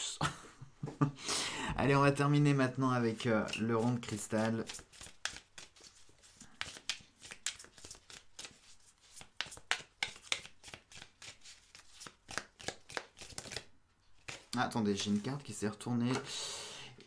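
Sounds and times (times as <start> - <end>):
cards being shuffled by hand: 2.6 - 16.3.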